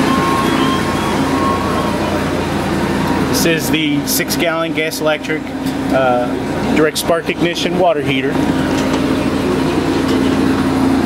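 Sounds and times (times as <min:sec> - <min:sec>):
droning tone: 0:00.0 - 0:04.8
machine humming: 0:00.0 - 0:11.0.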